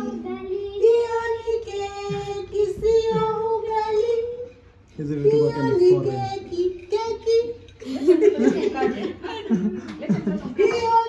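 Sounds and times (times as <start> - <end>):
child singing long held notes: 0.0 - 4.6.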